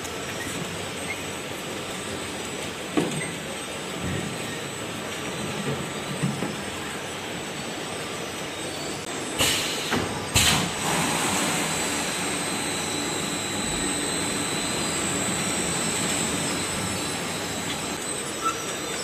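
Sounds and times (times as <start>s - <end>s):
packing machinery running: 0.0s - 19.0s
loud bursts of noise: 9.1s - 18.1s
faint high whine: 11.5s - 18.5s.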